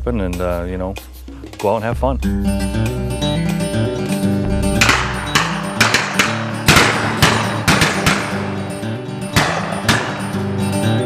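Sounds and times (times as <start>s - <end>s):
acoustic guitar music: 2.2s - 11.0s
shotgun shots: 4.8s - 8.6s.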